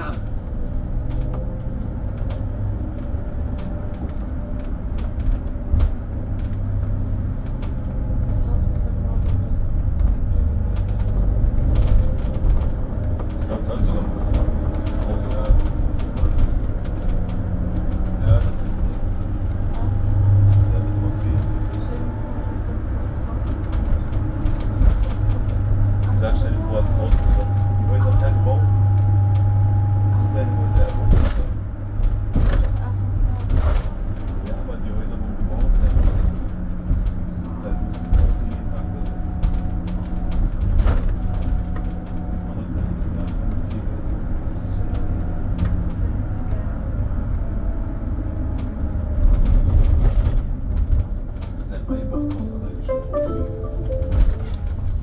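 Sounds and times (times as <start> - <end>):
minibus engine hum: 0.0 - 55.0
road noise: 0.0 - 55.0
body knocks and rattles: 31.0 - 34.5.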